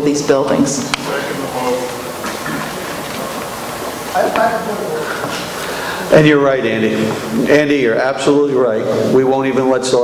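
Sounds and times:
large hall room noise: 0.0s - 10.0s
faint murmur of voices: 0.5s - 9.3s.

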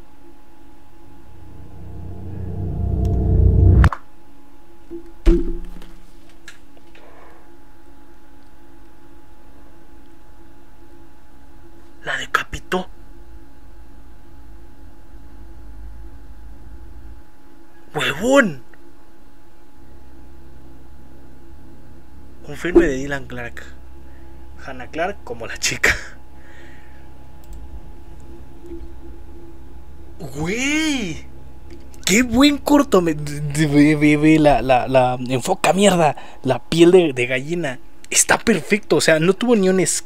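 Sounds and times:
faint steady drone: 0.0s - 6.2s, 6.8s - 40.0s
faint hum: 0.0s - 40.0s
deep rumble: 0.6s - 4.3s, 13.0s - 17.9s, 26.2s - 34.7s.

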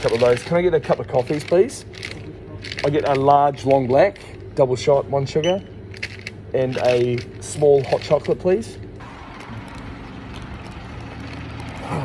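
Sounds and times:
traffic and engine noise: 0.0s - 12.0s.

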